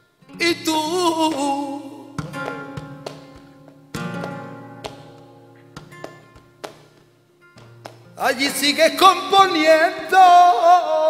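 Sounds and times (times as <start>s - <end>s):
sharp handclaps: 2.2s - 8.2s.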